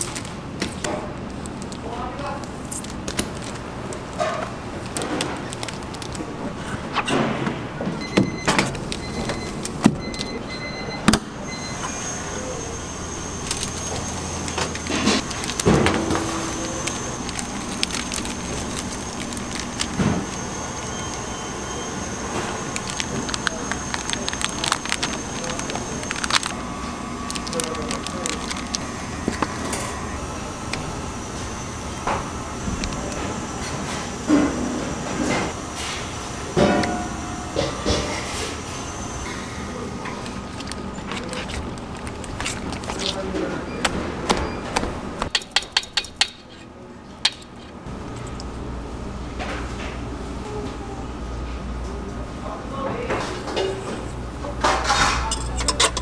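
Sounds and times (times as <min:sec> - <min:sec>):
spatula scraping plastic wrap: 0:13.4 - 0:21.3, 0:22.3 - 0:26.6, 0:27.3 - 0:29.7, 0:40.5 - 0:43.2.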